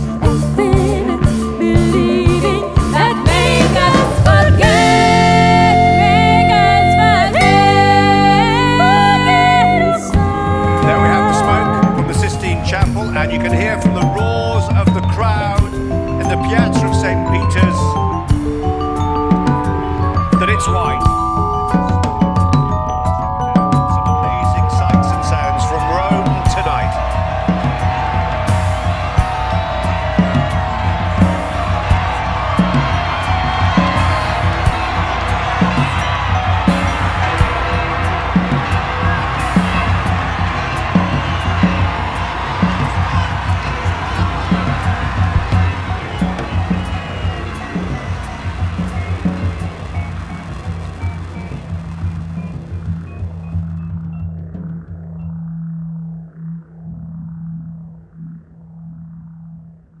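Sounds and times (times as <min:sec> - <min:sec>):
live rock band playing: 0:00.0 - 0:54.2
drum hits: 0:21.0 - 0:53.7
low sustained drone: 0:43.6 - 0:59.8.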